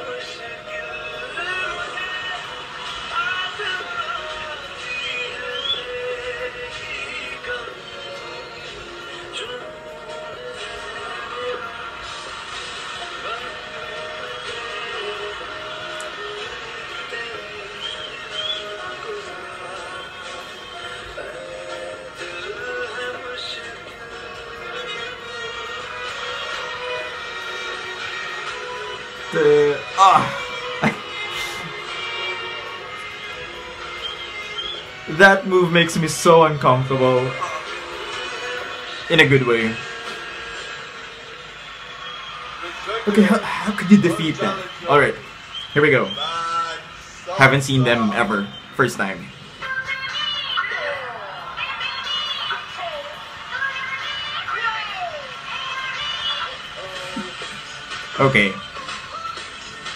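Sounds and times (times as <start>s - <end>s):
dance music melody: 0.0s - 59.9s
steady television playback noise: 0.0s - 59.9s.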